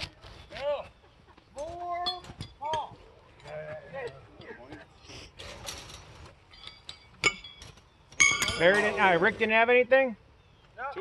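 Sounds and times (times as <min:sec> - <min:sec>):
horseshoes clinking together: 0:01.6 - 0:04.8, 0:05.4 - 0:09.1.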